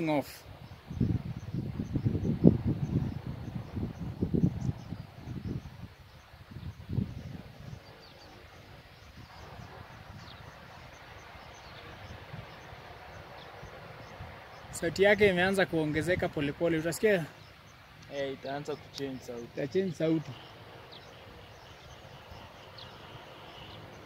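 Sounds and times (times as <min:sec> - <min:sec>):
distant propeller plane hum: 0:00.0 - 0:24.0
faint insect chirps: 0:00.0 - 0:24.0
wind rumbling on microphone: 0:00.0 - 0:24.0.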